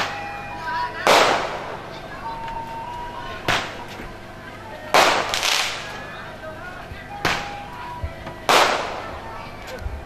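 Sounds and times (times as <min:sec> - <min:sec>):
faint music: 0:00.0 - 0:10.0
firecracker bangs: 0:01.0 - 0:01.9, 0:03.4 - 0:03.9, 0:04.9 - 0:06.0, 0:07.2 - 0:07.7, 0:08.4 - 0:09.4.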